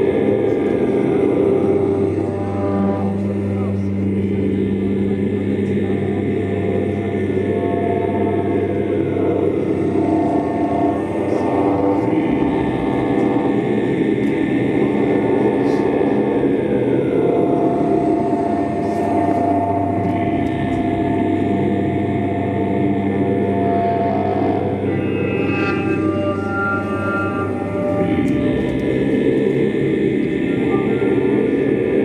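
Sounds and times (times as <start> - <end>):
low layered drone music: 0.0 - 32.0
steady held tone: 0.0 - 32.0.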